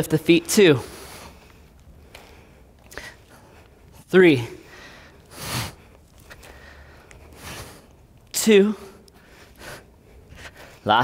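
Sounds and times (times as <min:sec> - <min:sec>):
person breathing hard: 0:00.8 - 0:03.9, 0:04.6 - 0:08.0, 0:08.8 - 0:10.9.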